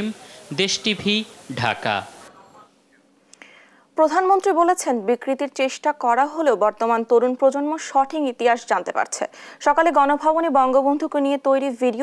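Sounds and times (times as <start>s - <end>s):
person speaking: 0.0s - 2.8s
brief breath: 3.4s - 3.9s, 9.3s - 9.6s.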